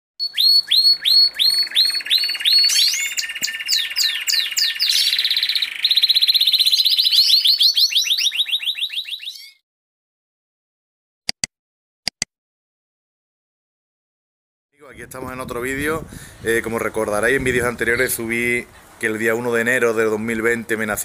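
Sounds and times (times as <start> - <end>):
canary singing: 0.2 - 9.6.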